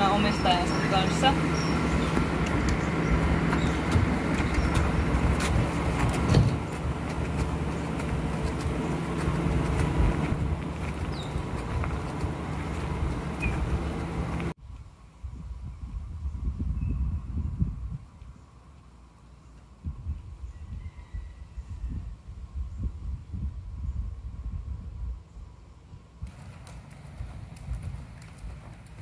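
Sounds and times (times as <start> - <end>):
low machine hum: 0.0 - 14.6
outdoor background noise: 0.0 - 29.0.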